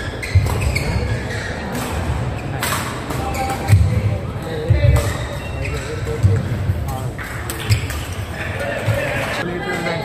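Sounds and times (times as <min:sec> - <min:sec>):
voices in background: 0:00.3 - 0:10.0.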